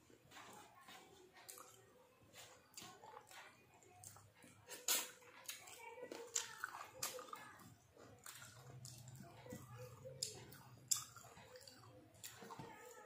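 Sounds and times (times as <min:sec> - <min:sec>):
person chewing: 0:00.3 - 0:13.0
mouth clicks and smacks: 0:02.7 - 0:07.4, 0:08.2 - 0:12.6.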